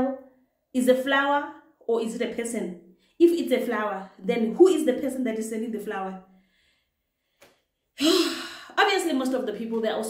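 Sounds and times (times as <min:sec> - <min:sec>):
woman sighing: 0:08.0 - 0:08.7.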